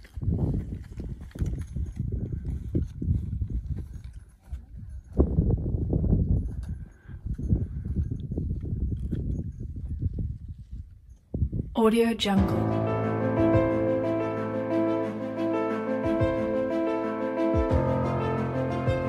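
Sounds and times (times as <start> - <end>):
wind rumbling on microphone: 0.0 - 11.8
footsteps: 15.9 - 19.0.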